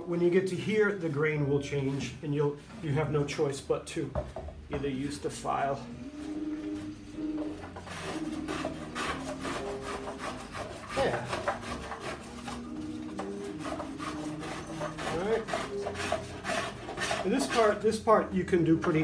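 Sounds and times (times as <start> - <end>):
hand file rasping on wood: 6.1 - 18.1.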